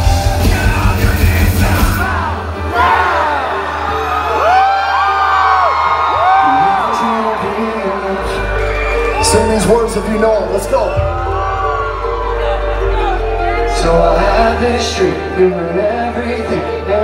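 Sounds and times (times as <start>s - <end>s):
heavy metal band playing: 0.0s - 4.5s, 7.0s - 17.0s.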